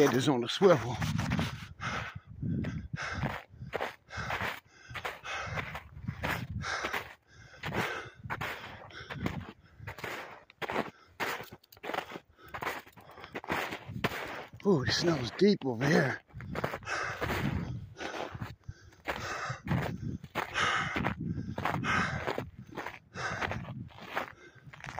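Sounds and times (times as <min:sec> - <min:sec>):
footsteps crunching through snow: 0:00.0 - 0:01.8, 0:03.0 - 0:24.9.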